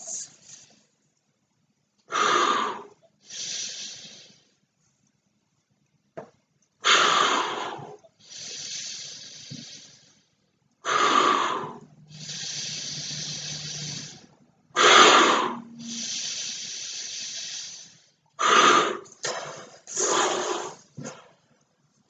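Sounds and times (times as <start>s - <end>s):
air blown into balloon: 10.8s - 21.2s.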